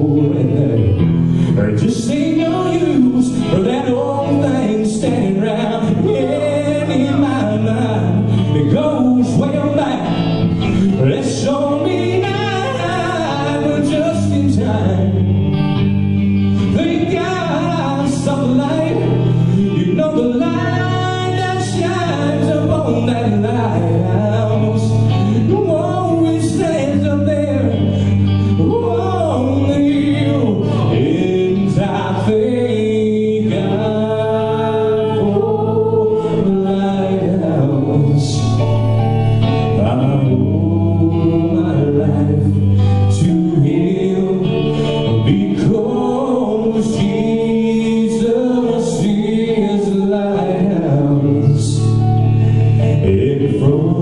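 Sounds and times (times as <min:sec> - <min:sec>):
band playing gospel song: 0:00.0 - 0:54.0
electric guitar: 0:00.0 - 0:54.0
keyboard: 0:00.0 - 0:54.0
man singing lead: 0:00.0 - 0:54.0.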